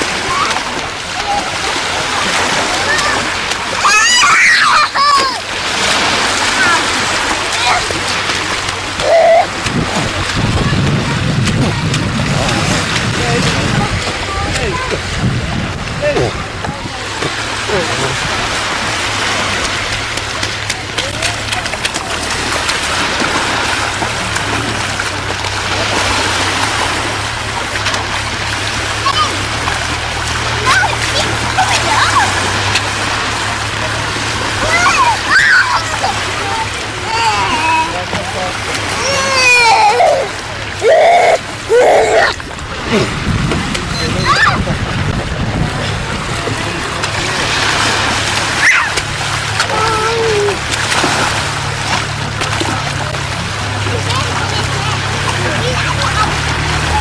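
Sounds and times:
children calling out: 0:00.0 - 0:12.0, 0:28.9 - 0:29.7, 0:30.5 - 0:33.1, 0:34.6 - 0:38.1, 0:38.8 - 0:42.4, 0:43.9 - 0:44.7, 0:48.4 - 0:50.8, 0:54.0 - 0:57.0
waves washing onto shingle: 0:00.0 - 0:57.0
wind buffeting microphone: 0:05.4 - 0:37.1, 0:41.4 - 0:57.0.

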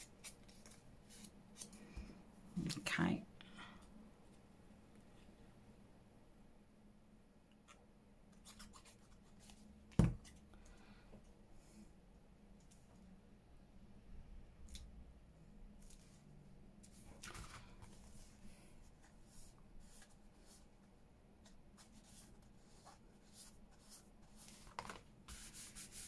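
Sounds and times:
paper card rustles and taps: 0:24.5 - 0:25.4.

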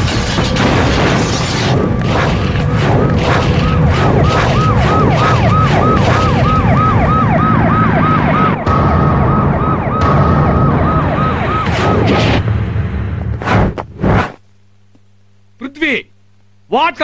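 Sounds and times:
low rumble: 0:00.0 - 0:14.4
siren yelping: 0:03.0 - 0:12.4.

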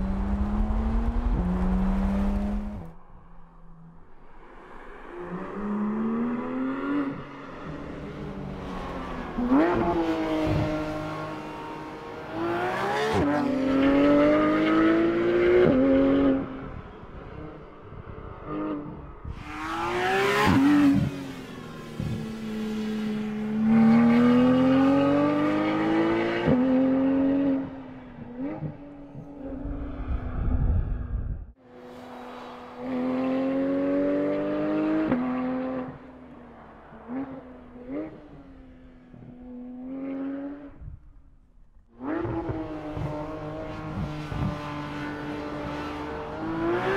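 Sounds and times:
car engine revving through gears: 0:00.0 - 0:02.9, 0:09.1 - 0:16.6, 0:18.5 - 0:29.6, 0:32.8 - 0:41.0, 0:41.9 - 0:46.9.

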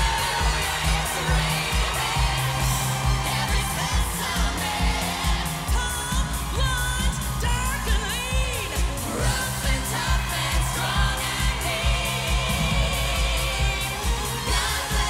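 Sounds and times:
steady beat: 0:00.0 - 0:15.0
women singing pop song: 0:00.0 - 0:15.0.

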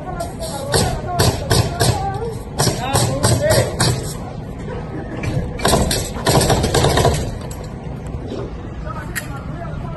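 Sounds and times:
outdoor background: 0:00.0 - 0:09.9.

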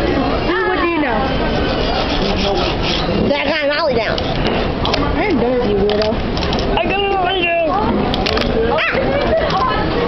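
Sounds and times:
fingerboard rubbing on paper: 0:01.5 - 0:04.6.

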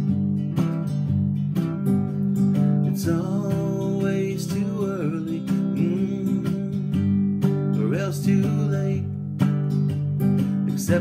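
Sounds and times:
strummed acoustic guitar: 0:00.0 - 0:11.0
man singing: 0:02.8 - 0:09.5, 0:10.4 - 0:11.0.

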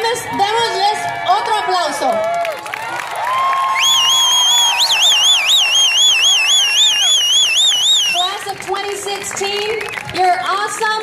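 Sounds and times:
shrill warbling whistle: 0:03.8 - 0:08.3.

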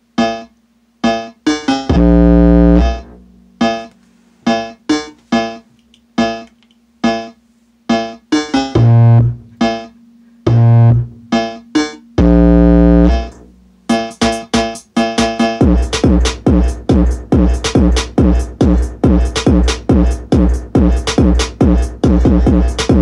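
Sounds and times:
very deep bass notes: 0:01.9 - 0:03.8, 0:08.8 - 0:09.8, 0:10.5 - 0:11.4, 0:12.2 - 0:13.8, 0:15.6 - 0:23.0
short pitched notes: 0:01.9 - 0:03.9.

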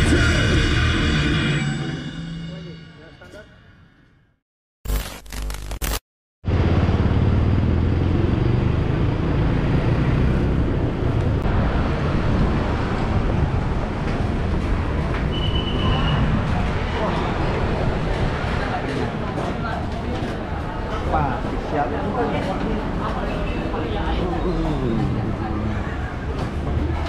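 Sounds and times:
road traffic noise: 0:06.5 - 0:27.0
people's voices: 0:16.4 - 0:27.0.

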